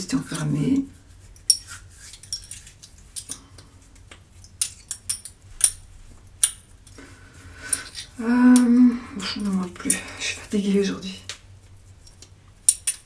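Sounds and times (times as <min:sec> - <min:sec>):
small metal objects clinking: 0:01.3 - 0:03.6, 0:04.4 - 0:07.0.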